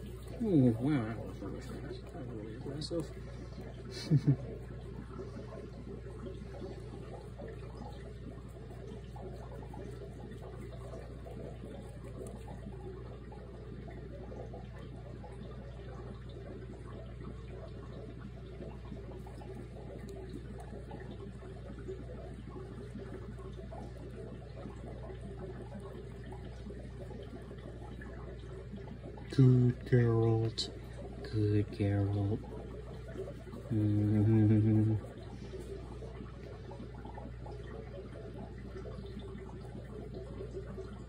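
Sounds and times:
steady low hum: 0.0 - 41.0
rabbit chewing crunchily: 6.4 - 13.3.

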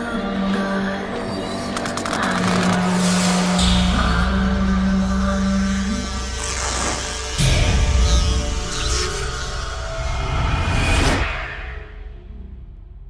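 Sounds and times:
low drone music: 0.0 - 13.0.

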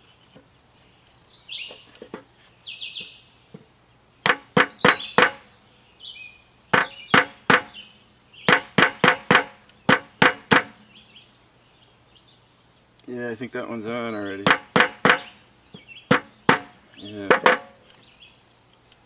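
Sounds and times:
birds chirping: 0.0 - 19.0
hammer knocking on wooden block: 4.2 - 5.4, 6.8 - 7.7, 8.5 - 10.8, 14.4 - 15.3, 16.1 - 17.7.

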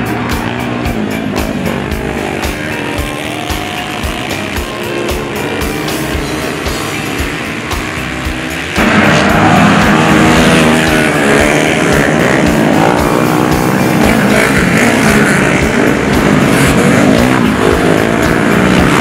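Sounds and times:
racing motorcycles passing: 0.0 - 19.0.

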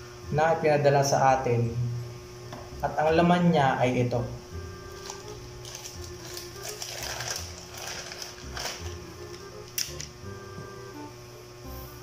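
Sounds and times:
plastic pouch tearing and crinkling: 5.0 - 10.0.

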